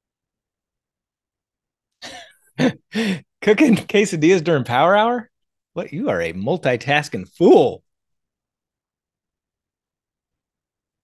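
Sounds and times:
man starting to laugh: 2.0 - 3.2
man's raspy exhale: 2.9 - 3.3.

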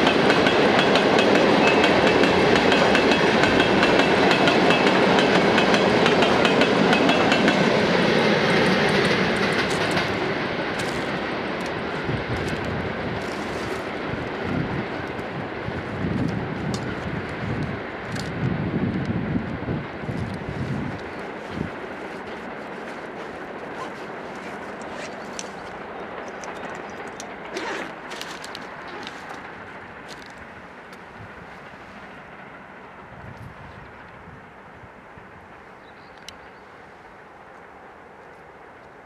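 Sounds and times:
steel wheels rumbling on rails: 0.0 - 38.8.

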